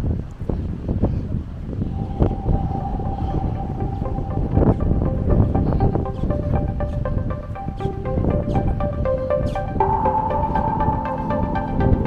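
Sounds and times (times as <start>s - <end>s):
wind buffeting microphone: 0.0s - 12.0s
steady thin tone: 1.8s - 12.0s.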